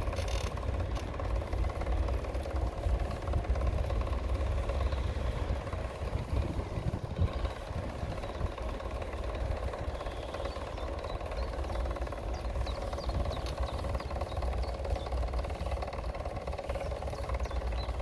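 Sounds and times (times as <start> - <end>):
rumble of wheels on asphalt: 0.0 - 18.0
wind buffeting microphone: 0.0 - 18.0.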